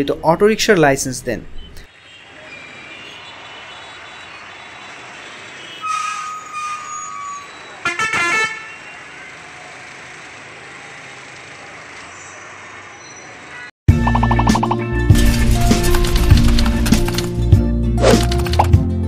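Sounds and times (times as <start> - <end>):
street traffic: 0.0 - 14.8
bus passing slowly: 1.7 - 13.7
vehicle horn honking: 1.9 - 9.7.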